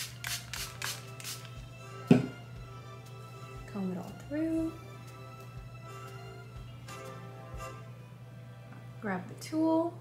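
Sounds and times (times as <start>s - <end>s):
spray bottle hissing squirts: 0.0s - 1.5s
soft background music: 0.0s - 10.0s.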